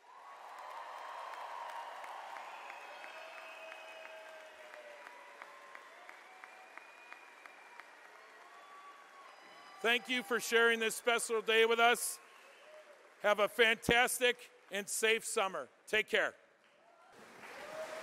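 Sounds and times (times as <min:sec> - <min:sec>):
audience applauding: 0:00.0 - 0:15.2, 0:16.9 - 0:18.0.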